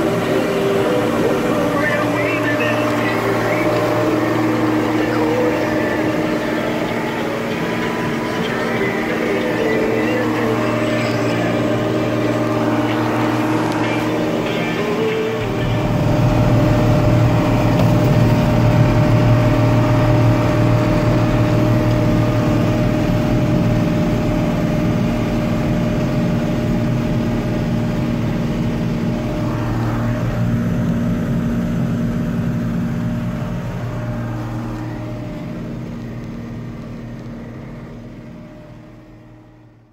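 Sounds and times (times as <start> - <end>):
tractor engine heard from cab: 0.0 - 39.9.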